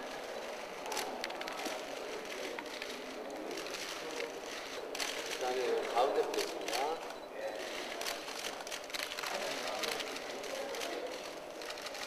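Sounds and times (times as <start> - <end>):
camera shutters clicking: 4.9 - 12.0.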